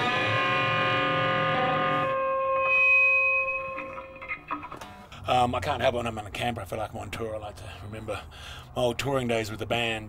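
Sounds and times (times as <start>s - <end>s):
electric guitar note ringing: 0.0s - 5.2s.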